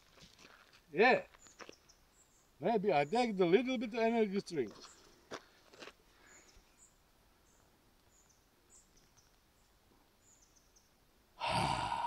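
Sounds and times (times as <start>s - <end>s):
man exhaling forcefully: 11.4s - 12.0s.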